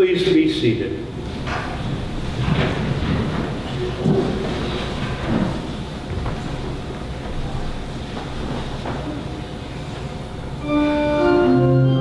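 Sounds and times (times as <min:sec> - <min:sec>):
crowd shuffling and rustling: 0:00.2 - 0:10.6.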